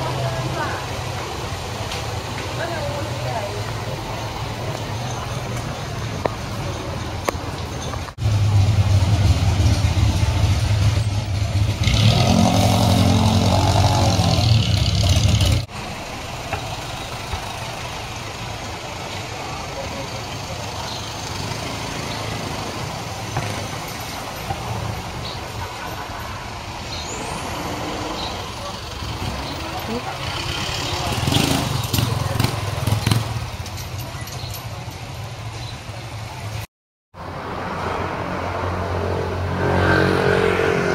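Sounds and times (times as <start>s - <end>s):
vehicle engine humming: 0.0s - 36.6s
street traffic: 0.0s - 40.9s.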